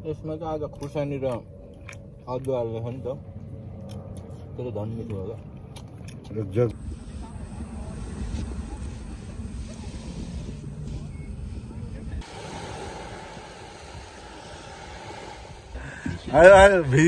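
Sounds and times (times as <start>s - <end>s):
wind buffeting microphone: 6.7s - 17.0s.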